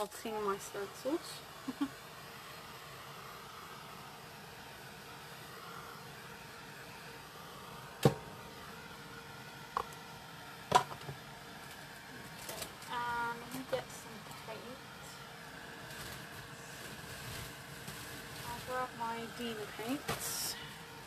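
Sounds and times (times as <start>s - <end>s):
heat gun fan blowing: 0.0s - 21.0s.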